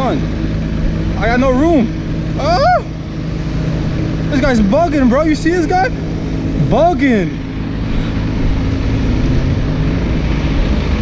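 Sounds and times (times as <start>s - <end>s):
city traffic noise: 0.0s - 11.0s
truck engine humming: 0.0s - 11.0s.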